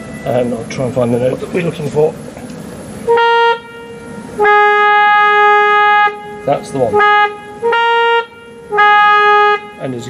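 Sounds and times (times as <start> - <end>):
organ trumpet reed notes: 3.1 - 10.0.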